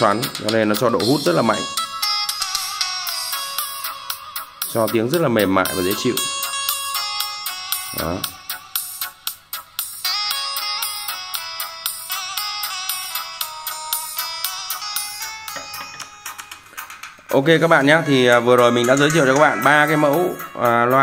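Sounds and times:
thin bright music through tweeters: 0:00.0 - 0:21.0
percussion ticks: 0:13.9 - 0:17.7, 0:18.3 - 0:21.0.

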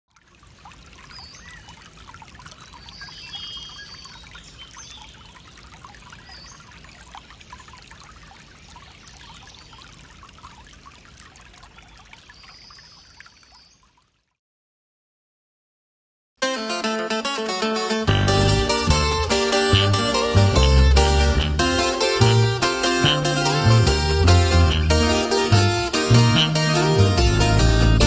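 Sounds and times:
stream trickling and splashing: 0:00.1 - 0:14.4, 0:18.7 - 0:26.8.

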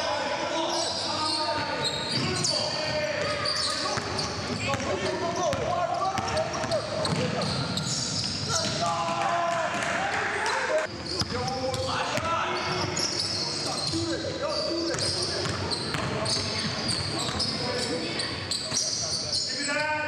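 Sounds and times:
players calling out: 0:00.0 - 0:19.9.

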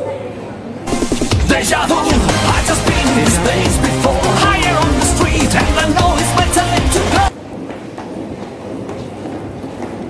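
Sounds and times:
background music with a beat: 0:00.9 - 0:07.3.

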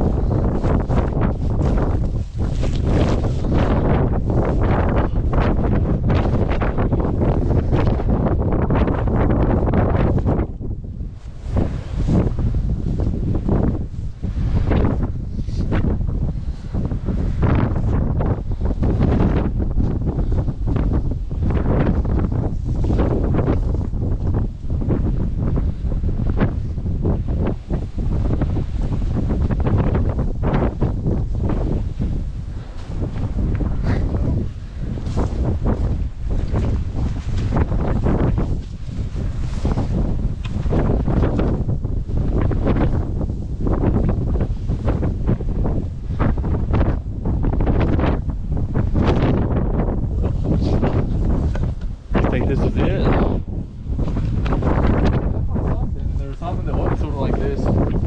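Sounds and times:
strong wind buffeting microphone: 0:00.0 - 0:58.0.

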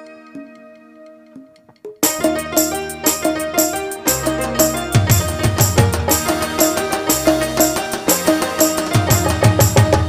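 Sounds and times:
sustained keyboard notes: 0:00.0 - 0:10.0.

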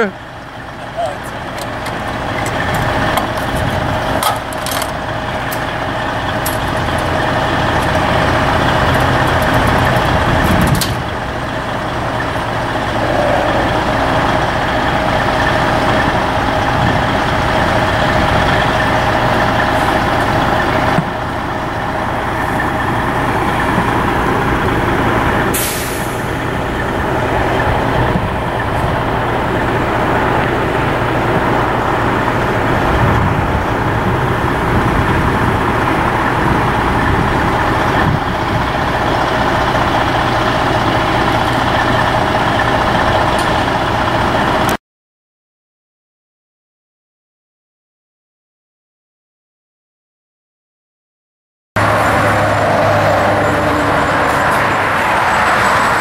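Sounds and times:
diesel truck engine idling: 0:00.0 - 0:44.8.

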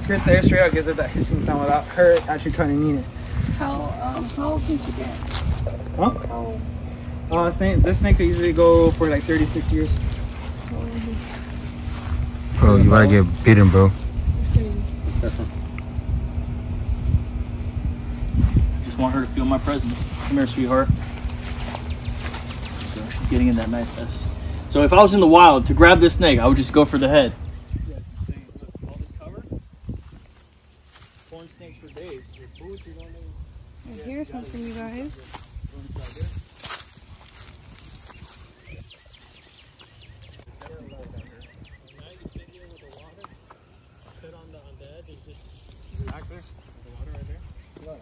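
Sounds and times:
footsteps through dry grass: 0:00.0 - 0:28.8, 0:29.4 - 0:48.0
wind buffeting microphone: 0:00.0 - 0:30.4, 0:32.5 - 0:43.1, 0:45.7 - 0:48.0.

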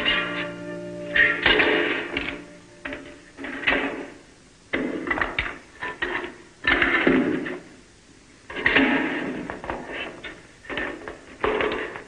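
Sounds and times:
held music cue: 0:00.0 - 0:04.3.

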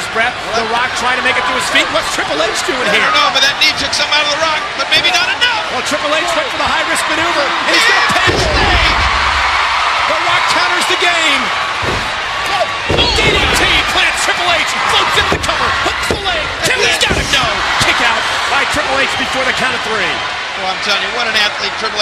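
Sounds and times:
crowd cheering and shouting: 0:00.0 - 0:22.0.

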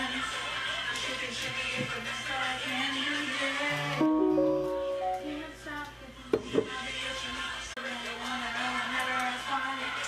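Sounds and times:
song with singing voice: 0:00.0 - 0:10.0.

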